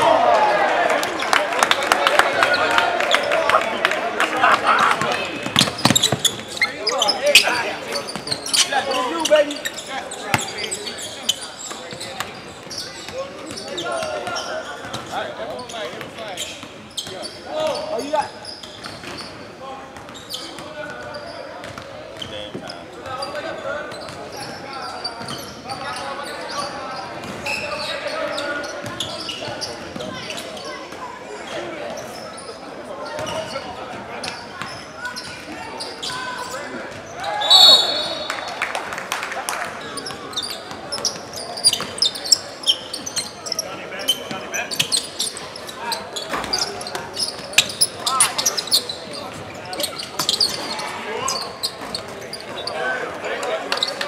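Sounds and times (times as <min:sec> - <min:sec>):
voices of players and spectators: 0:00.0 - 0:54.0.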